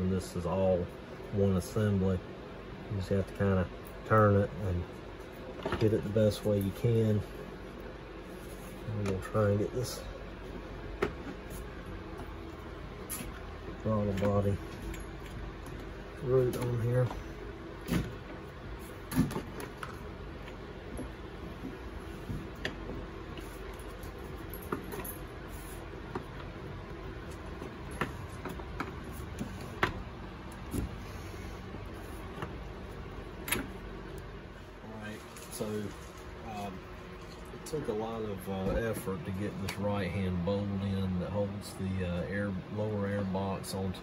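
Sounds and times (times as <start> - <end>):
steady low hum: 0.0 - 44.0
faint handling noises: 3.2 - 40.8.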